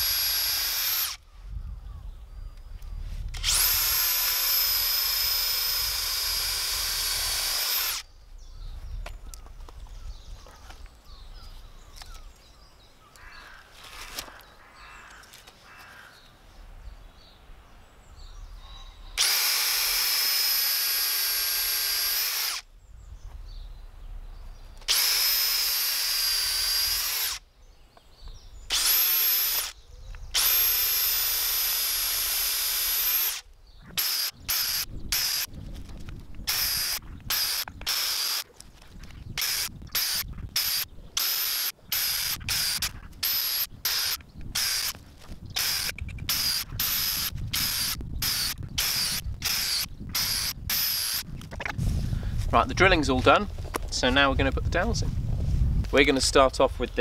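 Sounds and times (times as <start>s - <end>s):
cordless drill boring into wood: 0.0s - 1.2s, 3.3s - 8.0s, 19.2s - 22.6s, 24.8s - 27.4s, 28.7s - 35.5s, 36.5s - 38.6s, 39.3s - 51.3s.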